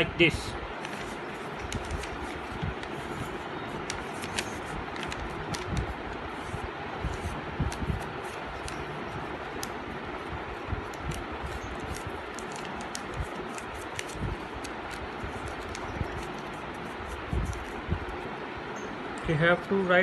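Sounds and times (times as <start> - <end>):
steady background hiss: 0.0 - 20.0
paper crackling and rustling: 0.7 - 17.8.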